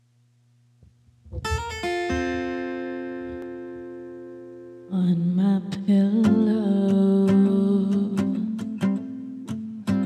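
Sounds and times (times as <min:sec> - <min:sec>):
faint hum: 0:00.0 - 0:10.0
guitar chords strummed: 0:01.2 - 0:10.0.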